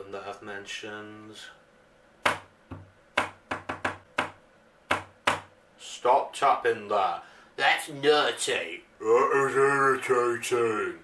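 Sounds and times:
fingers tapping on cabinet: 2.2s - 5.5s.

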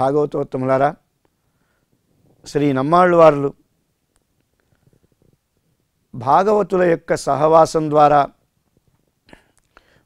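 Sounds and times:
man speaking: 0.0s - 1.0s, 2.4s - 3.6s, 6.1s - 8.4s.

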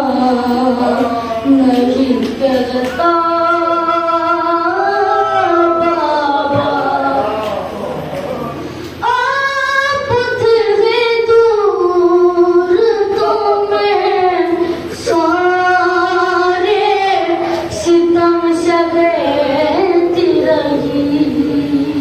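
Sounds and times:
boy chanting devotional verse: 0.0s - 22.0s.

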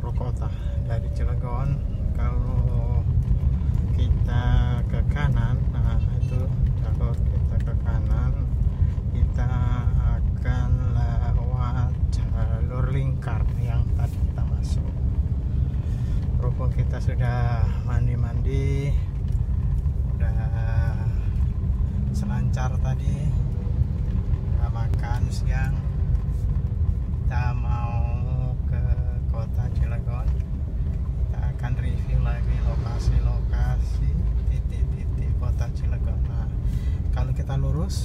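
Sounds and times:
car engine and tyres rumble: 0.0s - 38.0s.

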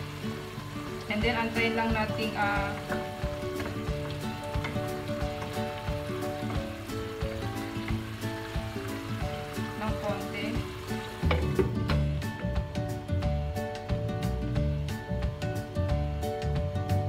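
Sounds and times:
background music: 0.0s - 17.0s
food sizzling in a wok: 0.0s - 17.0s.

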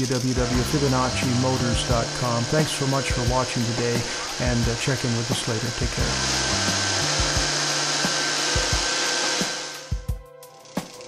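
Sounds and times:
compressed air rushing and hissing: 0.0s - 10.1s
air compressor running: 0.0s - 11.0s.

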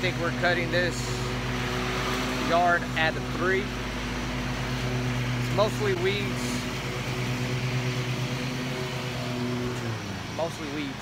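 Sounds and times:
riding mower engine running: 0.0s - 11.0s.

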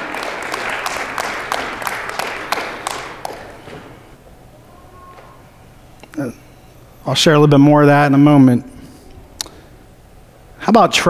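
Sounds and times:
congregation applauding: 0.0s - 4.2s.

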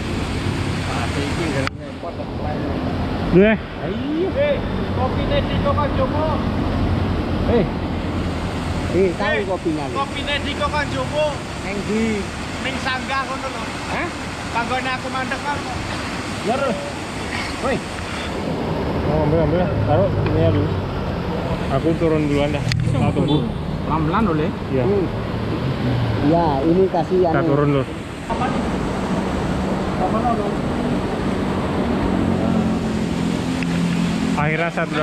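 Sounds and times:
road traffic overhead: 0.0s - 35.0s
vehicle rumbling by: 17.1s - 35.0s.

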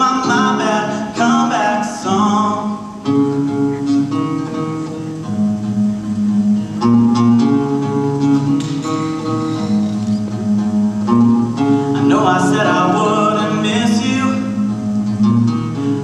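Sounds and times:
acoustic guitar chords: 0.0s - 16.0s.

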